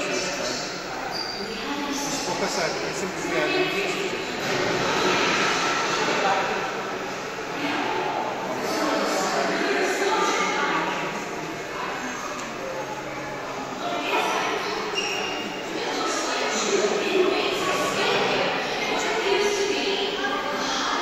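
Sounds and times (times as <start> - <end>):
voices echoing in a hall: 0.0 - 21.0.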